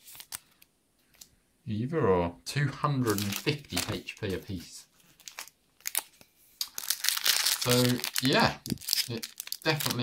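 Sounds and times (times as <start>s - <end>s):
foil wrapper crinkling: 3.1s - 10.0s.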